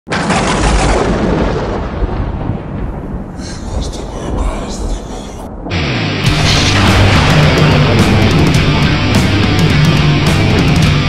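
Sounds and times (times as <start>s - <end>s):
loud boom: 0.1s - 10.6s
thunder-like rumble: 0.1s - 10.8s
metal song: 5.4s - 11.0s.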